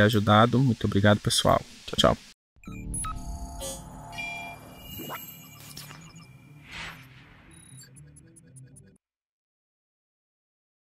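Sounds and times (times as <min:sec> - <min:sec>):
held synth tones: 0:02.6 - 0:09.0
rising synth sweep: 0:02.6 - 0:09.0.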